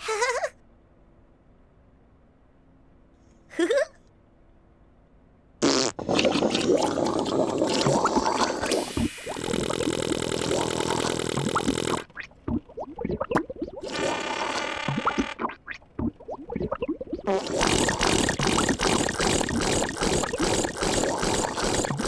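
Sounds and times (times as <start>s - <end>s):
squelchy splats: 8.7s - 14.1s, 14.8s - 22.0s
buzzing whirs: 8.8s - 12.2s.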